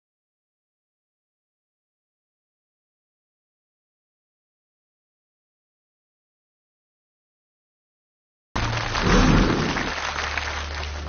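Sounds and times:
audience applause: 8.6 - 11.0.

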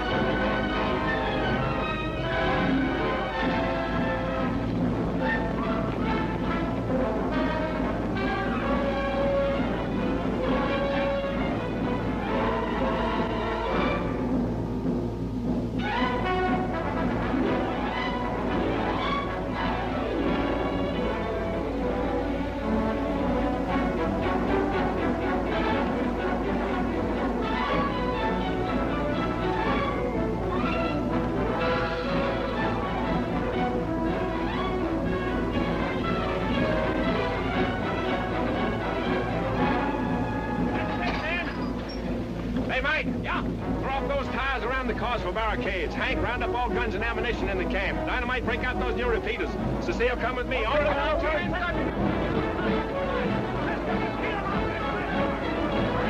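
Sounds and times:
orchestral music: 0.0 - 56.0
timpani: 0.0 - 56.0.

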